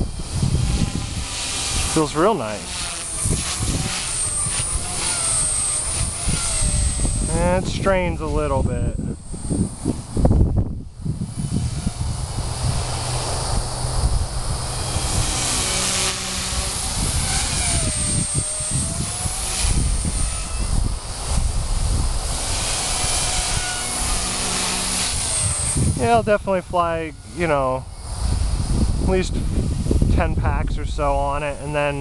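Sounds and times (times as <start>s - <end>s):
low microphone rumble: 0.0s - 32.0s
rc helicopter motor whining: 0.0s - 32.0s.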